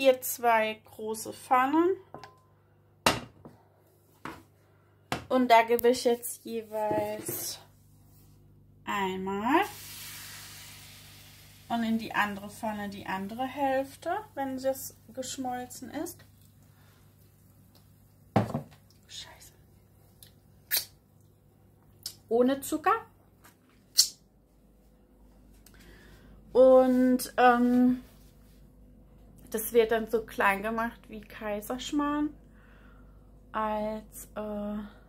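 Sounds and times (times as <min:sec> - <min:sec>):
kitchenware knock: 0:03.0 - 0:03.6.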